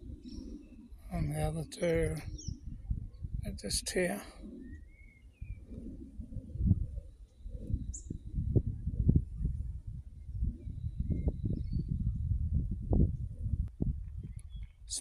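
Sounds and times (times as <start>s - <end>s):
wind buffeting microphone: 0.0s - 15.0s
faint bird chirps: 4.0s - 8.4s.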